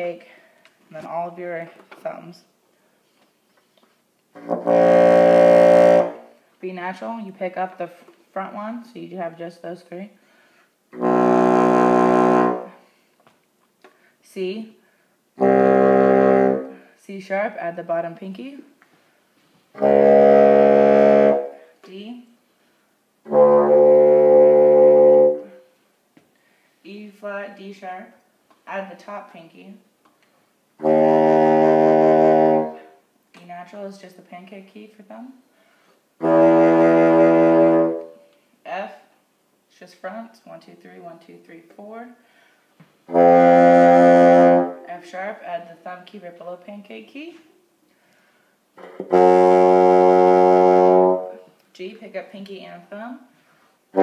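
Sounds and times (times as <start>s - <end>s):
bassoon low note: 19.8s - 21.6s, 23.3s - 25.6s, 48.8s - 51.4s.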